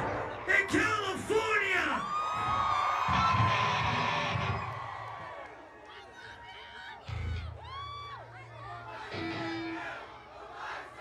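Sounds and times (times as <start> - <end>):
crowd noise: 0.0 - 11.0
live metal band music: 9.1 - 9.8.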